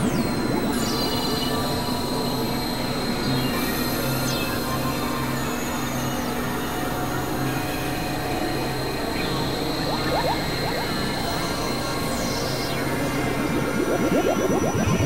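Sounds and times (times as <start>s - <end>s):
noisy electronic wash: 9.0s - 15.0s
thin sustained high tones: 9.2s - 15.0s
pulsing low tone: 9.3s - 15.0s
short rising chirps: 9.8s - 11.2s
high falling glide: 13.2s - 15.0s.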